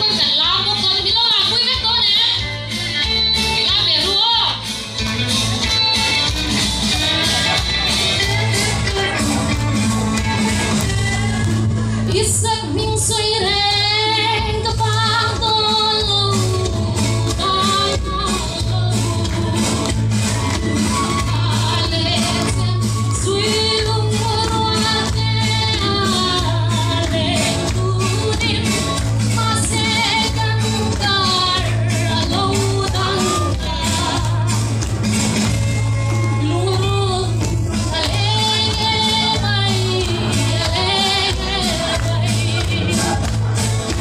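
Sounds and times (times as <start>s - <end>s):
amplified music with bass: 0.0s - 44.0s
woman singing through pa: 6.8s - 9.2s, 10.2s - 34.8s, 36.2s - 43.3s.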